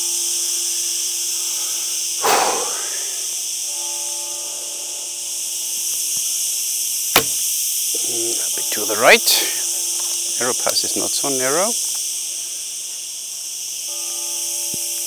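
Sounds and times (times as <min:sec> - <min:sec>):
insect chorus: 0:00.0 - 0:15.0
rustle: 0:00.0 - 0:15.0
bowstring crack: 0:02.2 - 0:02.9.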